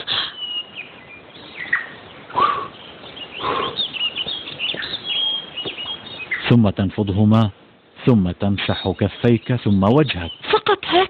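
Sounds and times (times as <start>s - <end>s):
birds chirping: 0.0s - 11.0s.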